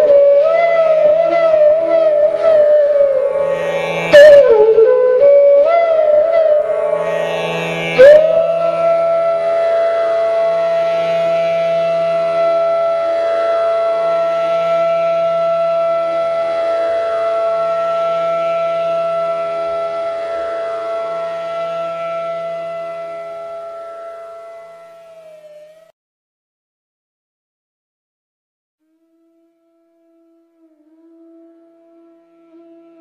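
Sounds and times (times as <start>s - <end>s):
flute holding long note: 0.0s - 26.0s, 28.8s - 33.0s
soft drone: 0.5s - 25.9s.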